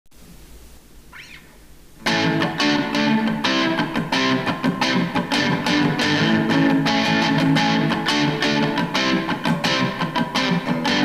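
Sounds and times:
guitar amplifier hum and hiss: 0.1 - 11.0
high chirp: 1.1 - 1.7.

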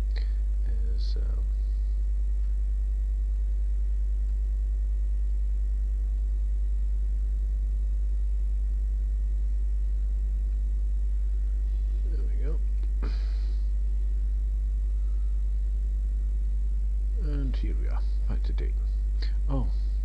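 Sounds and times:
low electrical mains hum: 0.0 - 20.0.

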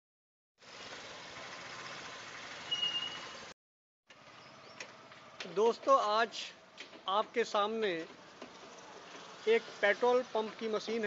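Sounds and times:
outdoor background noise: 0.6 - 11.0.

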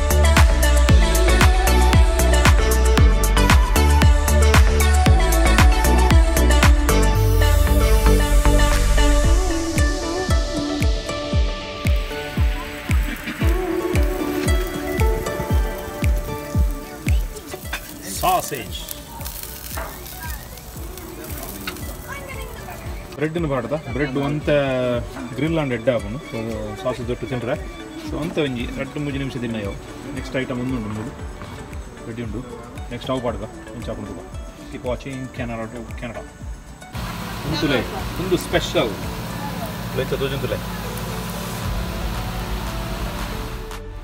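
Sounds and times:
sausages sizzling on grill: 0.0 - 43.8
background music: 0.0 - 44.0.

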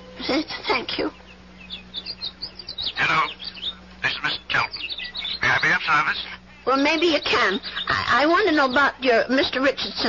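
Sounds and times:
high bird chirps: 0.8 - 10.0.

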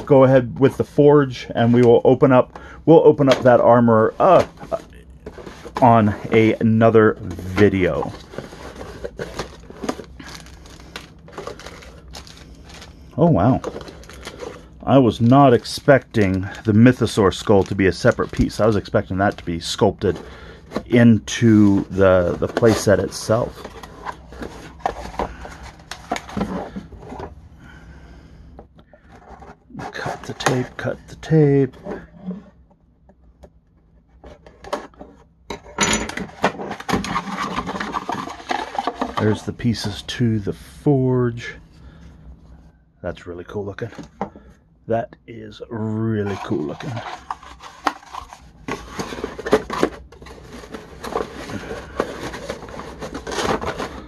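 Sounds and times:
cardboard and plastic rustling: 0.0 - 27.4, 29.0 - 32.6, 36.1 - 40.2, 46.2 - 54.0
plastic parts knocking: 46.8 - 54.0.

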